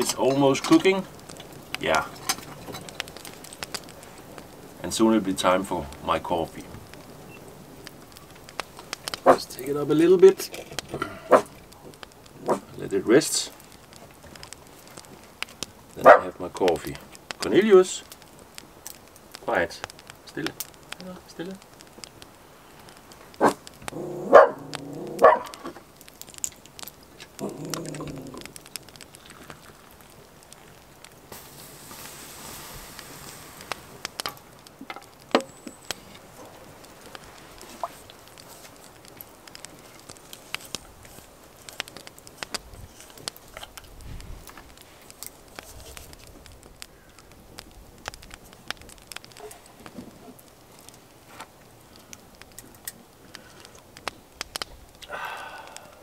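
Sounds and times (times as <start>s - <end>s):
wood fire crackling: 0.0s - 56.0s
dog barking: 11.3s - 11.5s, 16.0s - 16.3s, 24.3s - 25.5s.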